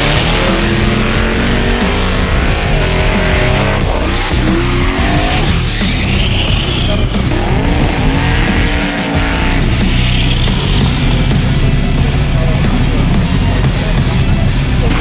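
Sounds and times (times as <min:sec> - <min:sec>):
tyres squealing: 0:00.0 - 0:11.7
car engine revving: 0:00.0 - 0:15.0
rock music: 0:00.0 - 0:15.0.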